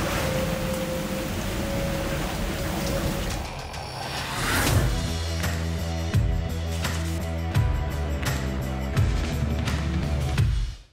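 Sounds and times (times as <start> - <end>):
wind and water rushing: 0.0 - 5.0
music: 0.0 - 10.9.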